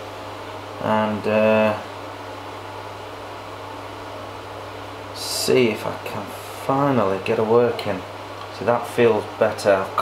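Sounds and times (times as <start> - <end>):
even hiss: 4.5 - 10.0.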